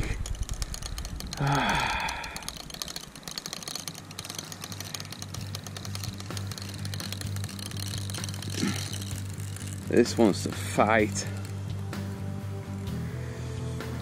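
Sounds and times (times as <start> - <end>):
fishing reel clicking rapidly: 0.0 - 13.3
low pulsing hum: 4.9 - 14.0.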